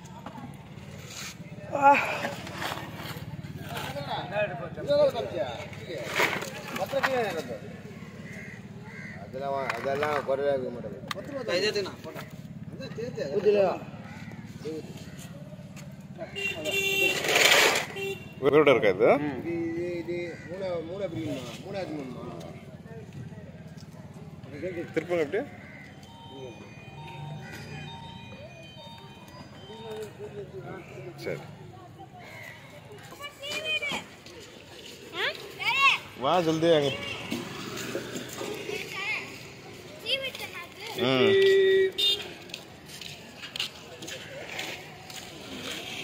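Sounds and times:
outdoor crowd hubbub: 0.0 - 46.0.

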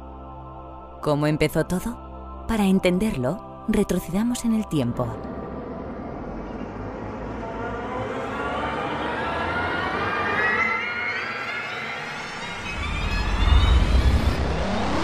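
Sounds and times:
deep rumble: 4.8 - 10.0
rising whoosh: 5.2 - 15.0.

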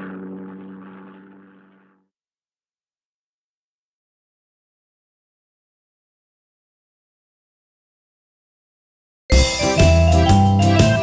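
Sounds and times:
cartoon engine hum: 0.0 - 2.0.

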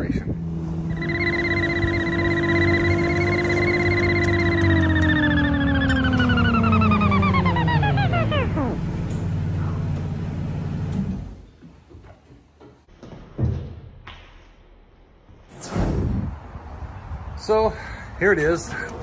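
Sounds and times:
low engine note: 0.0 - 11.5
vehicle whine: 0.0 - 11.7.

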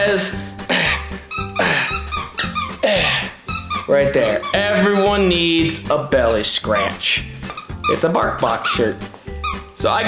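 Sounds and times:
background music with beat: 0.0 - 10.0
squeaky chew toy: 1.3 - 2.8, 3.4 - 5.4, 6.7 - 8.0, 8.6 - 8.8, 9.4 - 9.8.

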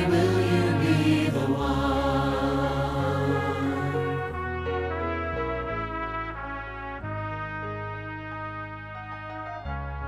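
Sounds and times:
choir holding sustained notes: 0.0 - 4.7
orchestral backing: 0.0 - 10.0.

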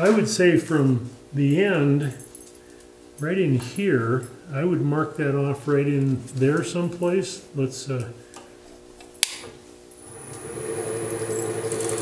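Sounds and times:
lathe motor humming and whining: 10.0 - 12.0.

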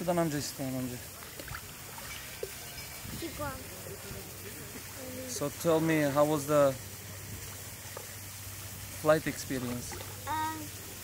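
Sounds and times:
pool water lapping and splashing: 0.0 - 11.0
steady background hiss: 0.0 - 11.0.

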